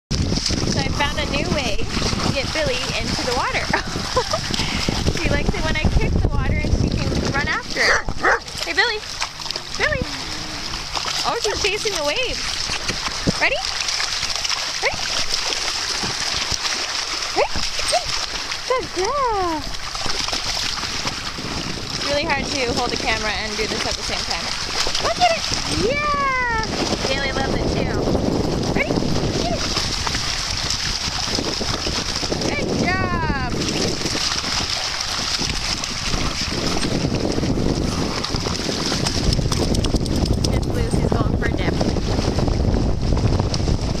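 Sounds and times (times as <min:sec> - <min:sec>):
dog moving through water: 0:00.1 - 0:44.0
seawater splashing over sand: 0:00.1 - 0:44.0
wind buffeting microphone: 0:00.1 - 0:44.0.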